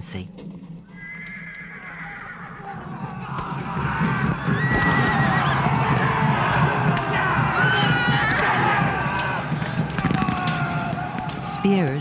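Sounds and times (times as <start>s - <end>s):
horses whinnying: 0.9s - 11.9s.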